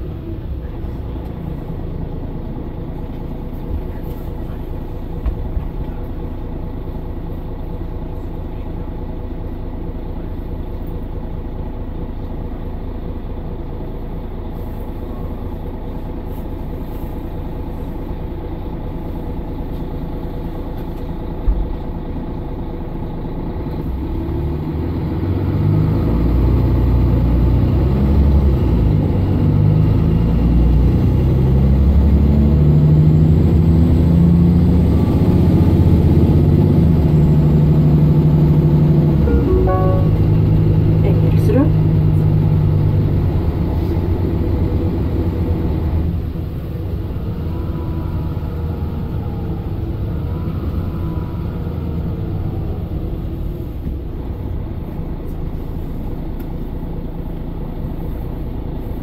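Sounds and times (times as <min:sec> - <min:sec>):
bus diesel engine pulling hard: 0:00.0 - 0:59.0.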